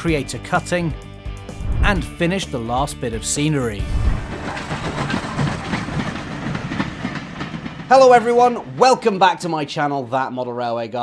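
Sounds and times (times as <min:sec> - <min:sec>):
train running on track: 0:03.4 - 0:10.1.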